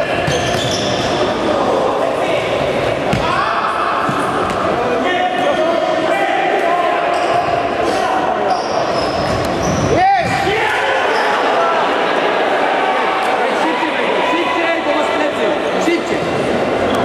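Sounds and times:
shoes squeaking on floor: 0.2s - 1.2s, 7.1s - 10.0s.

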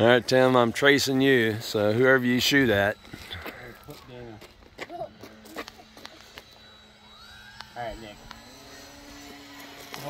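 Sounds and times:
model airplane motor hum: 0.0s - 10.0s.

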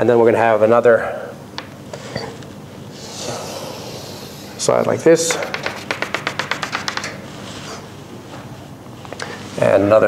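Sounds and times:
chalk tapping on blackboard: 4.8s - 7.2s.

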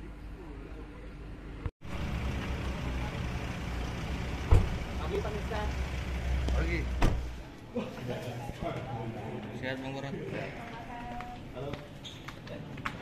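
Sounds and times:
car engine idling: 1.8s - 7.5s
voices talking: 2.1s - 11.8s
car door shutting: 4.4s - 4.9s, 6.8s - 7.4s.

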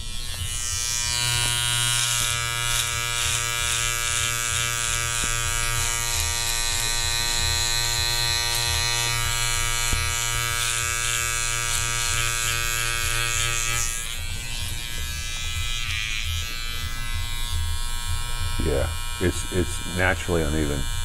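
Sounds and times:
electric beard trimmer buzzing: 0.0s - 21.0s.

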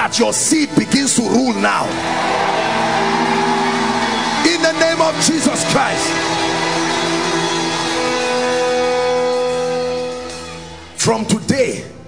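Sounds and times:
sustained music chord: 1.9s - 10.4s.

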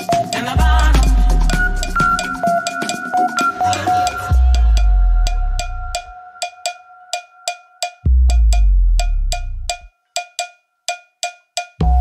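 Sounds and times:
pitched percussion hits: 0.0s - 9.9s
deep bass note: 4.3s - 6.1s, 8.1s - 9.9s.

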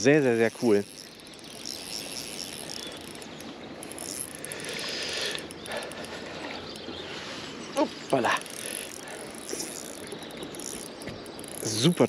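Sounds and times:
spinning reel being cranked: 0.2s - 6.2s, 8.1s - 12.0s.

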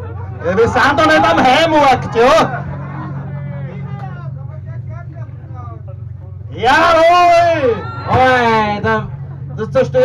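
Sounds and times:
people talking indistinctly: 0.0s - 10.0s
steady low hum: 0.0s - 10.0s.

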